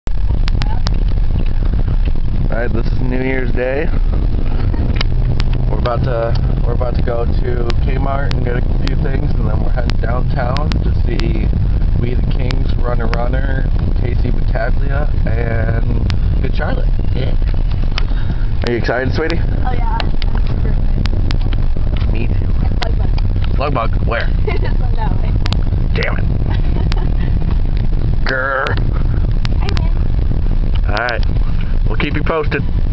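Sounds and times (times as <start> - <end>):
car engine rumble: 0.0 - 32.9
road noise: 0.0 - 32.9.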